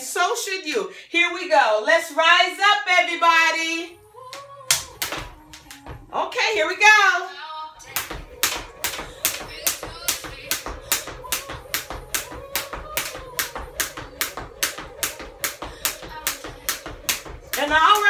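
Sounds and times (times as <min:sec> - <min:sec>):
hand clapping: 0:04.3 - 0:05.9, 0:07.8 - 0:18.0.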